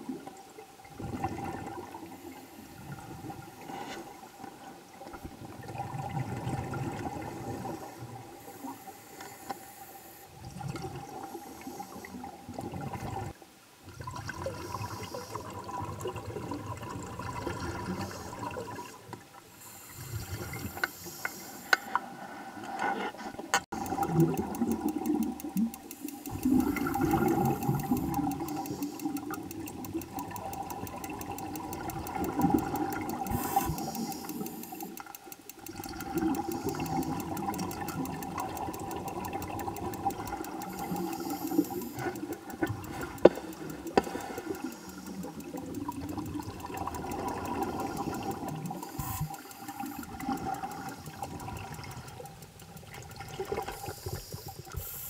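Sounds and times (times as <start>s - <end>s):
underwater regulator bubbles gurgling: 0.0s - 55.0s
steady tone: 23.7s - 51.6s.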